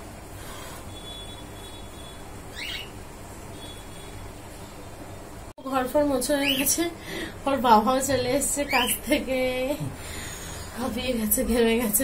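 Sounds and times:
bird chirp: 2.5 - 3.0.

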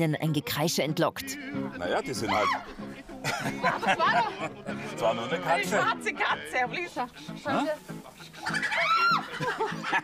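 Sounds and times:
chicken cackling: 8.4 - 9.6.

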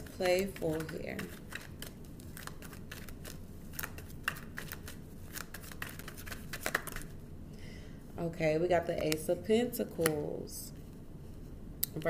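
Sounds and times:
cards shuffling: 0.0 - 7.2
low steady hum: 0.0 - 12.0.

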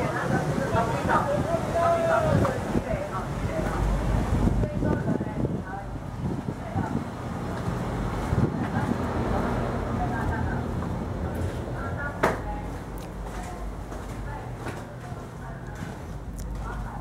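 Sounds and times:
people talking: 0.0 - 7.1, 8.3 - 17.0
steady low rumble: 2.6 - 17.0.

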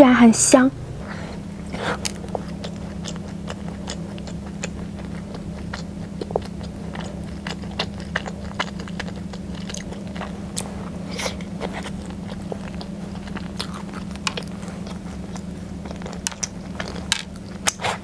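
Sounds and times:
steady low hum: 0.0 - 18.0
biting and chewing: 1.1 - 18.0.

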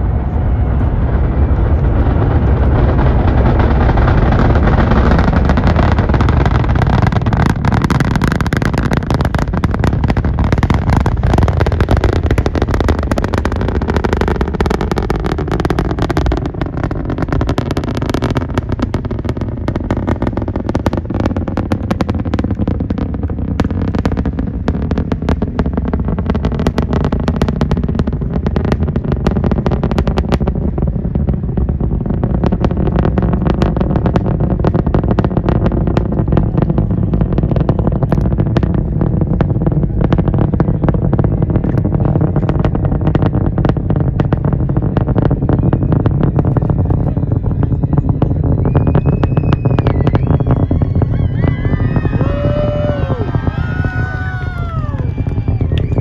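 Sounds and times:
rocket launch rumble with crackling: 0.0 - 56.0.

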